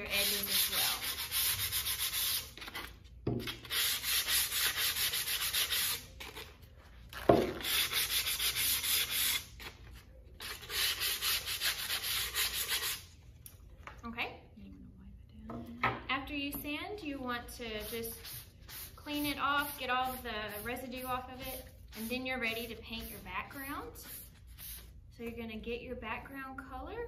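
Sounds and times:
sandpaper rubbing on wood: 0:00.1 - 0:02.5, 0:03.5 - 0:06.1, 0:07.6 - 0:09.5, 0:10.4 - 0:13.0.

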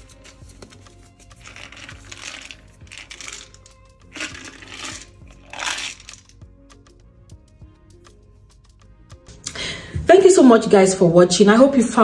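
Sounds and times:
peanuts rattling in a plastic jar: 0:01.3 - 0:06.4.

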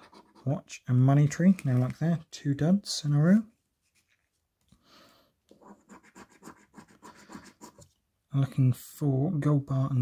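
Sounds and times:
scratchcard being scratched: 0:05.6 - 0:07.8.

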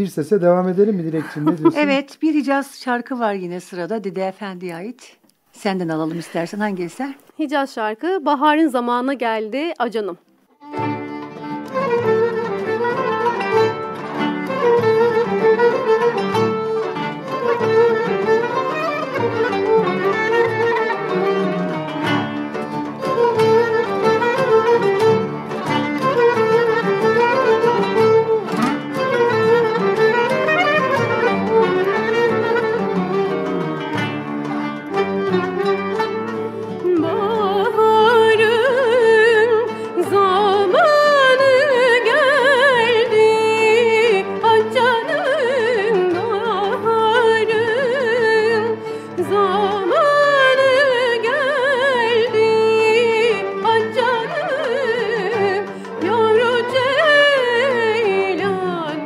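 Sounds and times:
classical ensemble with kanun and clarinet: 0:00.0 - 0:02.1, 0:10.4 - 0:59.0.

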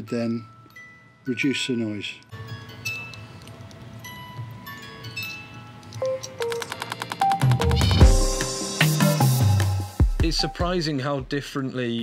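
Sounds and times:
music box plucking notes: 0:00.0 - 0:08.6
background music with fast beat: 0:06.4 - 0:11.5.

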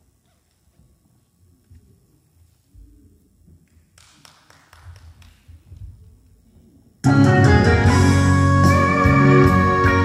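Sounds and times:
faint hand claps: 0:03.6 - 0:06.0.

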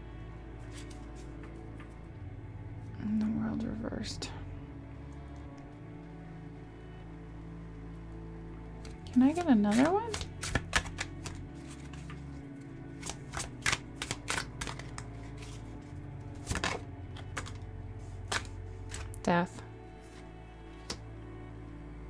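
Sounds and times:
quiet background music: 0:00.0 - 0:22.0
cards being shuffled: 0:00.6 - 0:02.0, 0:08.8 - 0:21.0.

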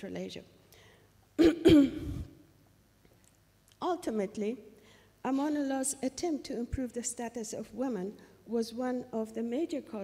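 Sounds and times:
woman clearing her throat: 0:01.4 - 0:02.4.

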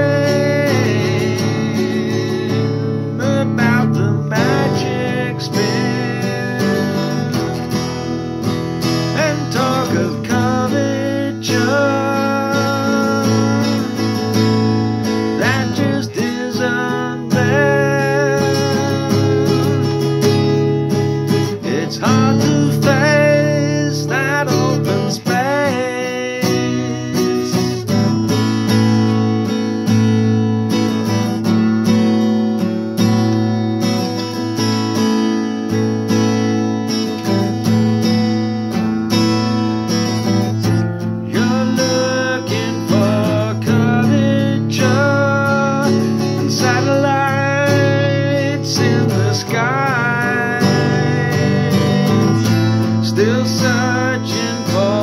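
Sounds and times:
man singing: 0:00.0 - 0:28.3, 0:39.1 - 0:55.0
acoustic guitar strumming: 0:00.0 - 0:55.0.

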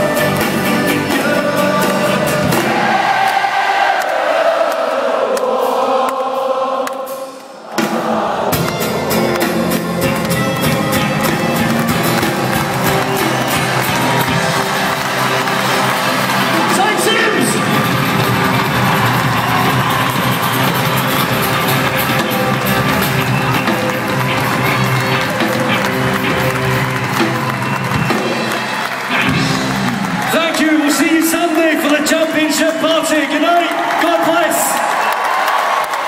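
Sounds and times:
live band with guitar and fiddles: 0:00.0 - 0:02.8, 0:08.5 - 0:33.5
crowd cheering: 0:00.0 - 0:36.0
children's choir singing: 0:00.9 - 0:09.2.

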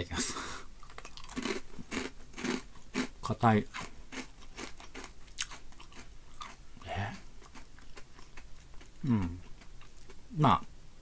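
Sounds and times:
chewing crunchy chips: 0:00.8 - 0:10.2
person saying eh: 0:06.8 - 0:07.2, 0:09.0 - 0:09.4.

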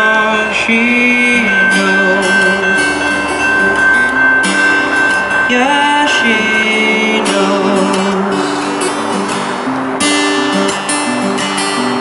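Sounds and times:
person singing: 0:00.0 - 0:09.7
guitar strummed: 0:00.0 - 0:12.0.

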